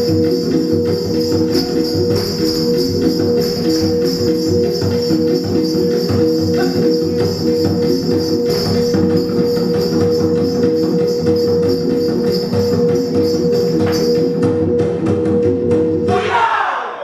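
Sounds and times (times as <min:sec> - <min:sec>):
ankle bells jingling: 0:00.0 - 0:14.8
regular drum beats: 0:00.0 - 0:16.7.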